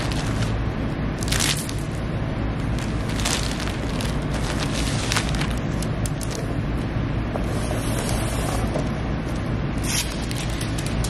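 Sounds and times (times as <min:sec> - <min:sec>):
plastic mailer bag crinkling: 0:00.0 - 0:00.6, 0:01.2 - 0:02.0, 0:02.6 - 0:06.4, 0:09.9 - 0:11.0
steady low hum: 0:00.0 - 0:11.0.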